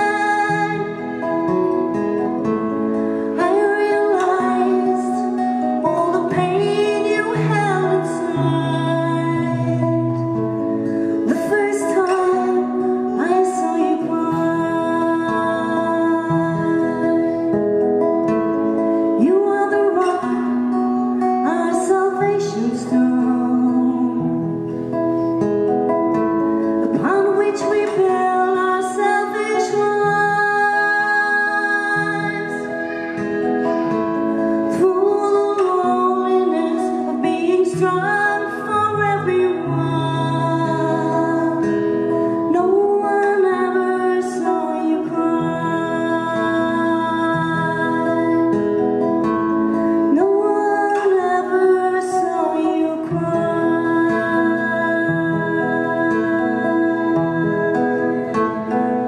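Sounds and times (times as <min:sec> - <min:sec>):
acoustic guitar: 0:00.0 - 0:59.0
woman singing: 0:00.0 - 0:59.0.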